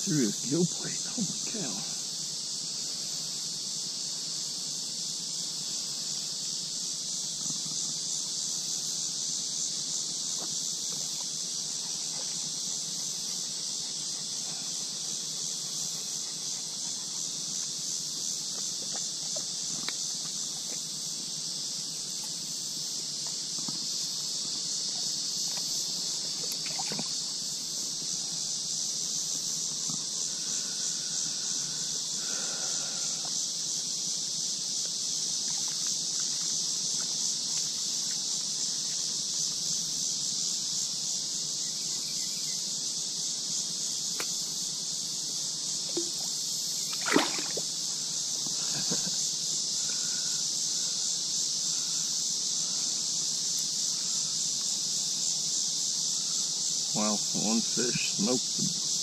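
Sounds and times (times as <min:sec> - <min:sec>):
insects droning: 0:00.0 - 0:59.0
sharp knock or splash: 0:46.9 - 0:47.6.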